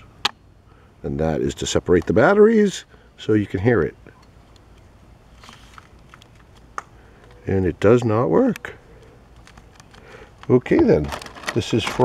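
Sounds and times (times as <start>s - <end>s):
plastic toy handling: 9.3s - 12.0s.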